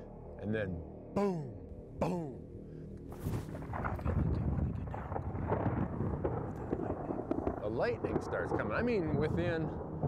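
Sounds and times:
strong wind gusting on microphone: 3.3 - 10.0.

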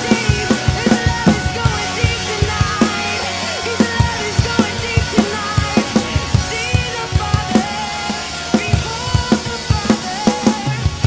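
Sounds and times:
drum kit playing: 0.0 - 11.0
rock band recording: 0.0 - 11.0.

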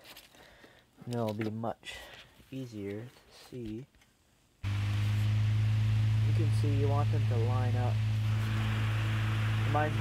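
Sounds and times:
air rushing from fan blades: 4.6 - 10.0
electric fan motor humming: 4.6 - 10.0.

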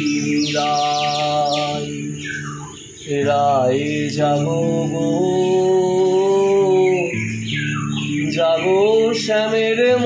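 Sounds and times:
acoustic guitar: 0.0 - 10.0
bird chirping: 0.0 - 10.0
man singing: 0.0 - 10.0.

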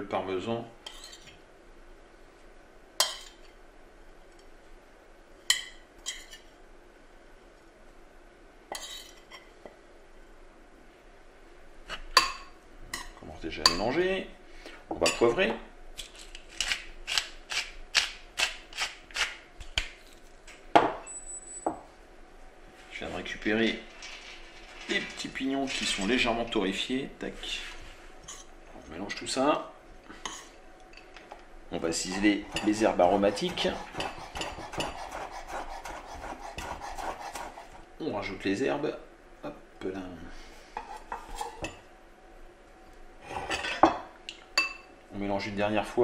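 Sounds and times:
knife chopping on wooden board: 32.5 - 37.6.

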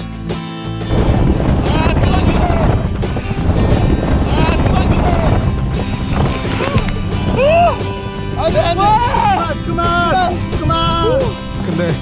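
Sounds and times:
water rushing: 0.9 - 11.8
wind buffeting microphone: 0.9 - 12.0
people yelling: 6.6 - 10.0.

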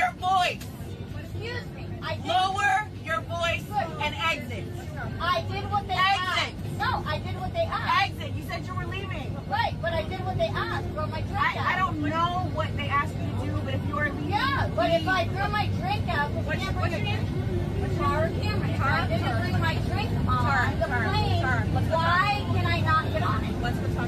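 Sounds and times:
voices arguing: 0.0 - 24.0.

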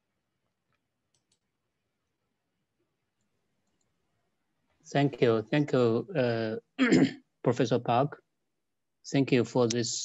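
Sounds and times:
faint clicks: 0.7 - 1.5
man speaking: 4.9 - 8.2, 9.0 - 10.0.

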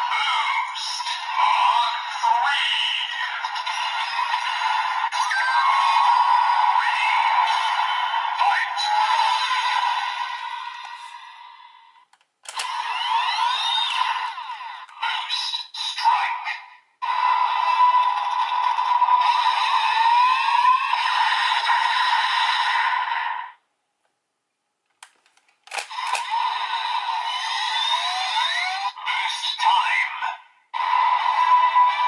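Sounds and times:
toy voice sound effects: 0.0 - 3.7, 8.4 - 9.6, 14.8 - 16.6, 27.3 - 30.5
toy speaker electronic music: 0.0 - 11.7, 12.5 - 23.1, 25.7 - 32.0.

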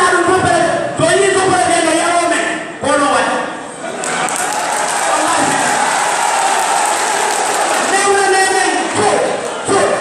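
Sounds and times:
crowd shouting in echoing hall: 3.8 - 10.0.

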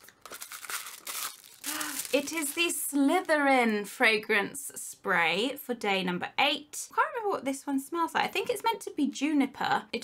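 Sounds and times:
paper and cardboard crinkling: 0.0 - 3.5.

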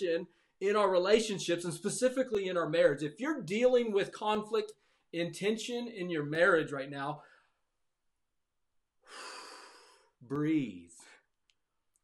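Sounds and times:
man taking deep breath: 9.0 - 10.2.

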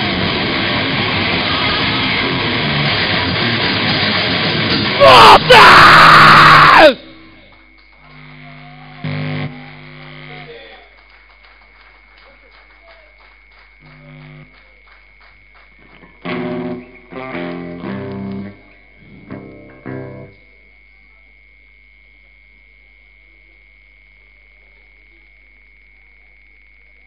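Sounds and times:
electric guitar chords: 0.0 - 7.4, 8.0 - 10.6, 13.8 - 14.5, 15.9 - 20.4
high-pitched amp whine: 0.0 - 11.0, 13.4 - 27.0.

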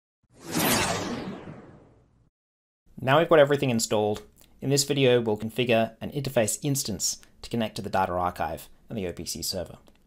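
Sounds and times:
whoosh sound effect: 0.3 - 2.1.

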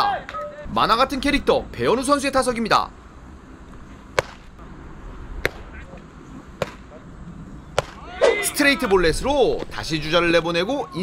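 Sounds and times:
baseball smacking into mitt: 4.1 - 4.6, 5.4 - 5.7, 6.6 - 6.9, 7.8 - 8.0.

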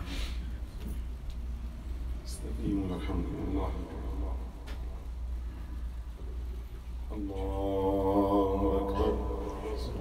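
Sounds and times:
steady low hum: 0.0 - 10.0
man chanting prayer: 2.2 - 4.9, 7.1 - 10.0.

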